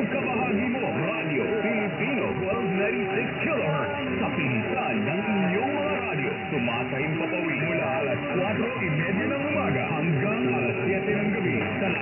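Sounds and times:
radio static: 0:00.0 - 0:12.0
voice announcing on am radio: 0:00.0 - 0:12.0.

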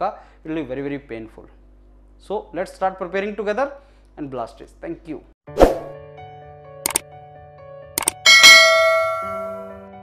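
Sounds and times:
mouse click sound effects: 0:08.0 - 0:08.2
bright bell ding: 0:08.0 - 0:09.8.

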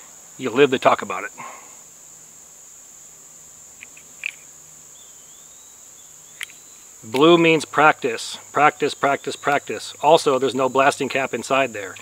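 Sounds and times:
high-pitched insect chorus: 0:00.0 - 0:12.0
short insect chirps: 0:00.0 - 0:12.0.

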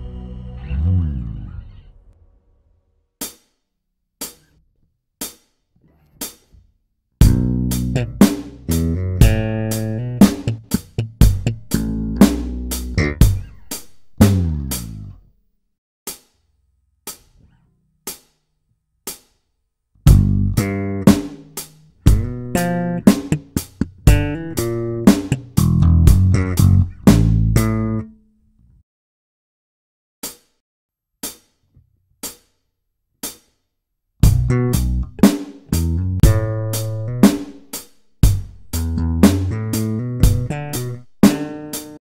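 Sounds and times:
electric bass guitar: 0:00.0 - 0:01.9, 0:07.2 - 0:15.2, 0:20.0 - 0:28.2, 0:34.2 - 0:37.6, 0:38.2 - 0:42.0.

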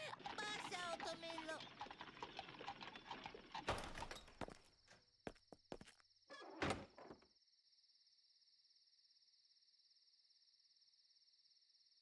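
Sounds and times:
hoofbeats clip-clopping: 0:00.0 - 0:04.6.

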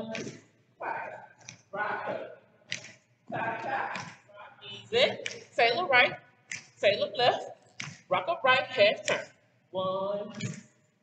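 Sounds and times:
person calling out dance steps: 0:00.0 - 0:10.6.

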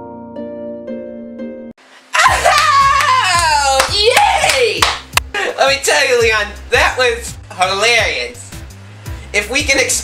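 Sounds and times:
person screaming: 0:02.1 - 0:04.8
sharp claps or slaps: 0:02.6 - 0:05.3.

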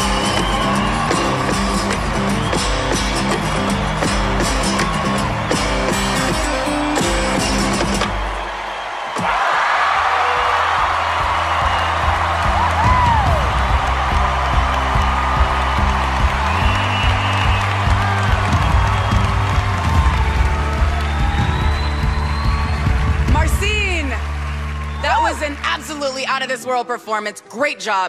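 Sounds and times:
whoops: 0:00.0 - 0:06.1, 0:08.2 - 0:25.5
studio audience cheering and applauding: 0:00.0 - 0:26.8
sustained music: 0:10.3 - 0:27.4.

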